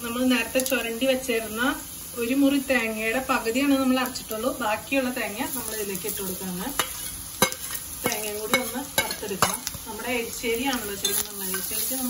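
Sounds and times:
food frying in oil sizzling: 0.0 - 12.0
metal clinks against pan: 6.8 - 9.7, 10.7 - 11.7.

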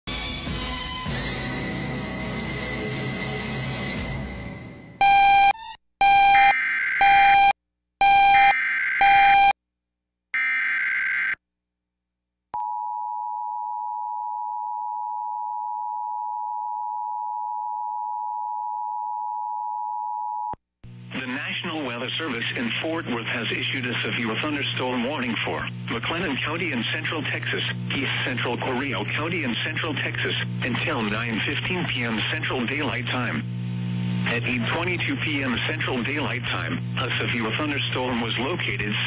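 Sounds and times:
background music: 0.1 - 5.0.

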